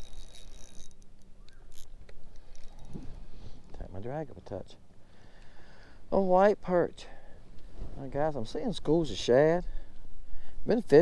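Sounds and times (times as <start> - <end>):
reel clicks: 0.0 - 3.0
fishing reel whirring: 0.0 - 3.3
wind on microphone: 2.9 - 3.4.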